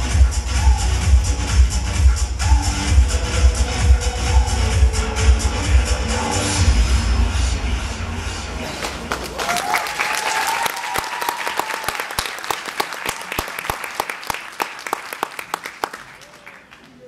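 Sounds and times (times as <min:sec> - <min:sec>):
audience applauding: 0:08.8 - 0:17.0
long high cheer: 0:09.2 - 0:17.0.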